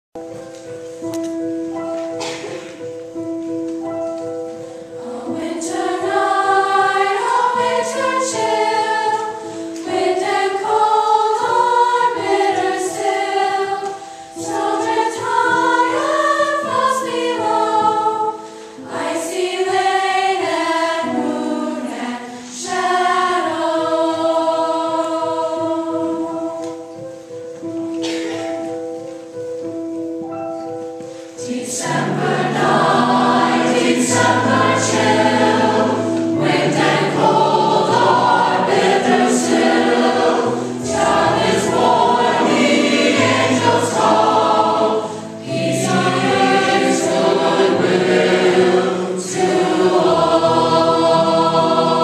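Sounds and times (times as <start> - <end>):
choir singing: 4.7 - 27.0, 31.3 - 52.0.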